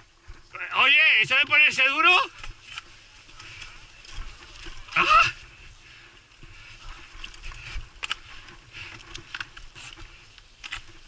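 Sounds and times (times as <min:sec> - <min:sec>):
bike rolling on dirt trail: 0:00.0 - 0:11.0
man speaking: 0:00.5 - 0:02.3.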